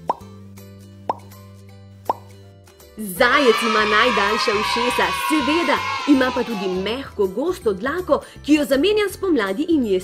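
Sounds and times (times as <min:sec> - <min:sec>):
cartoon plop pops: 0:00.0 - 0:00.3, 0:01.0 - 0:01.4, 0:02.0 - 0:02.4
soft background music: 0:00.0 - 0:10.0.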